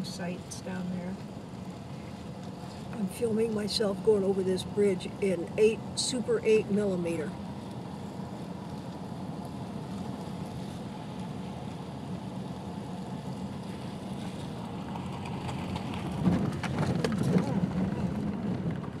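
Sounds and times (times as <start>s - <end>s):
car cabin road noise: 0.0s - 19.0s
knocks and rattles over gravel: 14.2s - 19.0s.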